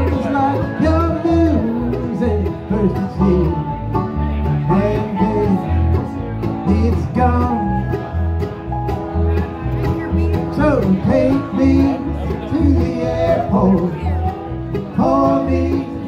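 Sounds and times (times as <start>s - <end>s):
man singing: 0.0s - 8.2s, 10.3s - 16.0s
bluegrass band playing: 0.0s - 16.0s.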